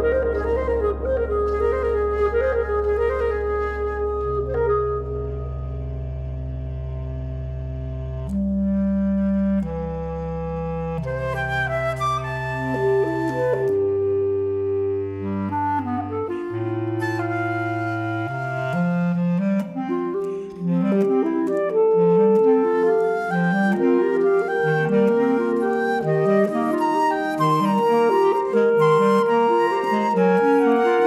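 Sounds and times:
clarinet lines: 0:00.0 - 0:06.0, 0:08.2 - 0:31.0
low woodwind notes: 0:00.0 - 0:31.0
chamber ensemble playing: 0:08.0 - 0:31.0.

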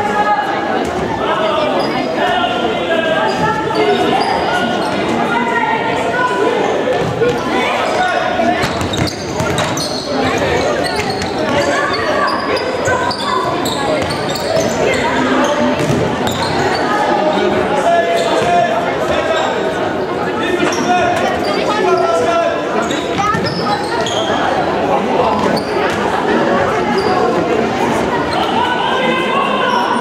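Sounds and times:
many voices calling and talking: 0:00.0 - 0:30.0.

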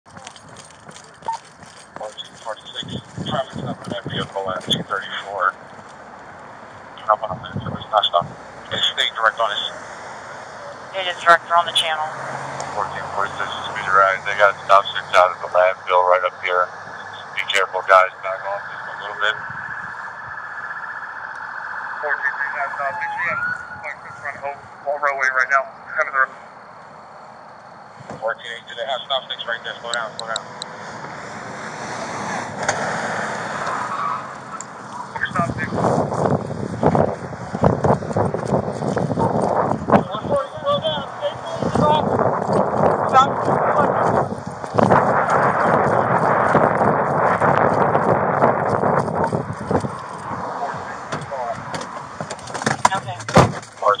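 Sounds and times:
car road and engine noise: 0:00.0 - 0:54.0
police radio voice: 0:02.0 - 0:05.6, 0:07.0 - 0:09.8, 0:10.6 - 0:19.5, 0:21.9 - 0:26.4, 0:28.2 - 0:30.4, 0:34.5 - 0:36.0, 0:40.0 - 0:42.1, 0:43.1 - 0:44.3, 0:50.4 - 0:51.7, 0:52.8 - 0:54.0.

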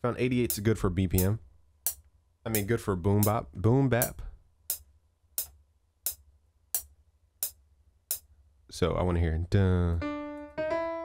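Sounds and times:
metronome ticks: 0:00.4 - 0:03.4, 0:04.0 - 0:08.3.

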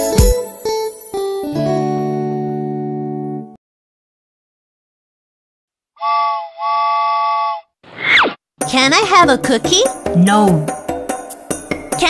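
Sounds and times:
train whistle toots: 0:06.0 - 0:07.7.

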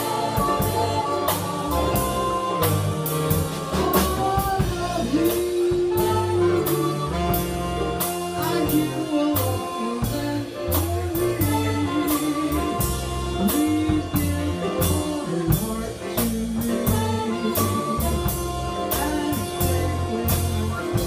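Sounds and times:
big band jazz: 0:00.0 - 0:21.0.

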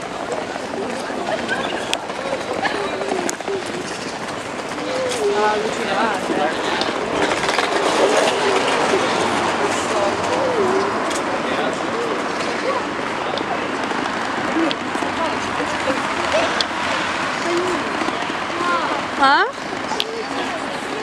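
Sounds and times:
indistinct voices of passers-by: 0:00.0 - 0:21.0
street din: 0:00.0 - 0:21.0.

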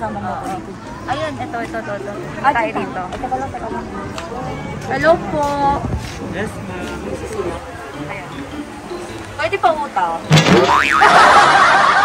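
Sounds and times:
people talking: 0:00.0 - 0:11.8
comic boing pitch glide: 0:10.2 - 0:11.4
busy warbling sound: 0:10.2 - 0:11.5.

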